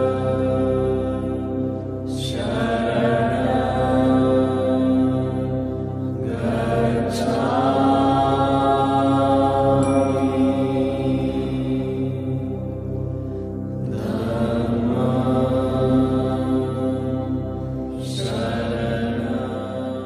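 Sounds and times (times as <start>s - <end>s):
held drone: 0.0s - 20.0s
slow chanted mantra: 0.0s - 20.0s.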